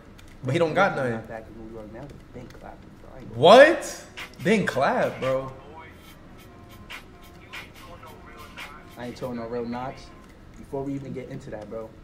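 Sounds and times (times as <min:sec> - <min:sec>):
rap music playing faintly: 0:00.4 - 0:12.0.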